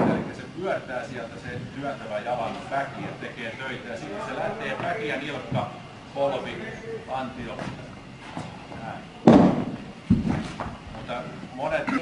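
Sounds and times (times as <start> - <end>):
shot put thudding on floor: 9.2 - 10.4.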